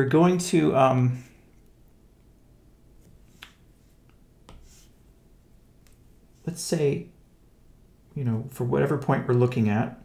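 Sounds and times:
low room noise: 0:00.0 - 0:10.0.

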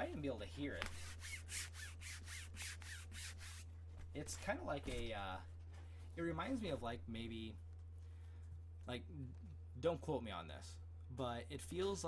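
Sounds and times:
hand rubbing rubbery material: 0:00.0 - 0:05.7.

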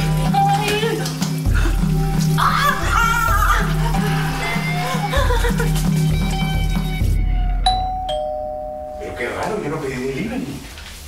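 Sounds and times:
doorbell ding-dong chime: 0:07.6 - 0:09.6.

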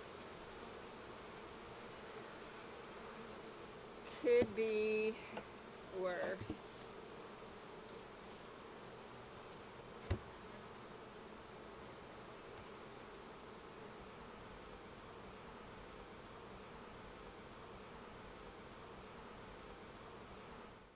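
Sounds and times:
bees buzzing: 0:00.0 - 0:20.9.

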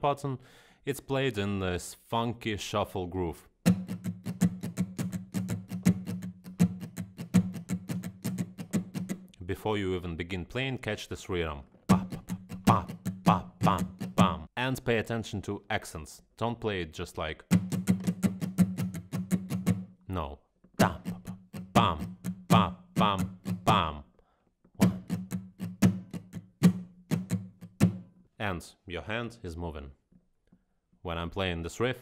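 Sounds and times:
acoustic guitar strumming: 0:03.6 - 0:09.3, 0:11.9 - 0:14.4, 0:17.5 - 0:20.0, 0:20.8 - 0:23.9, 0:24.8 - 0:28.2.

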